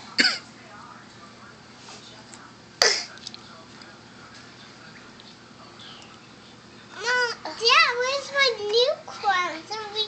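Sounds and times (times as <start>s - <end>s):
toddler coughing: 0.2s - 0.5s, 2.8s - 3.2s.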